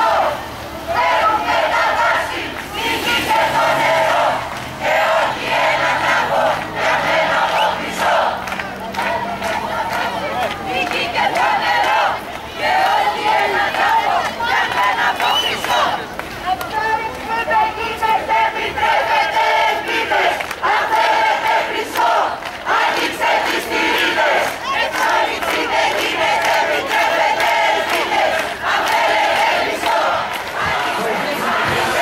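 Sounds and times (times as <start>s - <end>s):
crowd shouting slogans: 0.0s - 32.0s.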